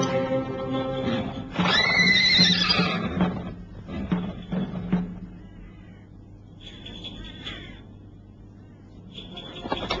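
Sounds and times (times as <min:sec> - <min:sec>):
film music: 0:00.0 - 0:02.6
horse whinnying: 0:01.5 - 0:03.6.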